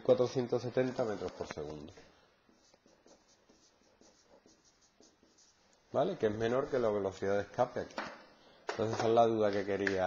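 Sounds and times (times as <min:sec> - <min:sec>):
marker writing on a whiteboard: 0:00.7 - 0:06.6.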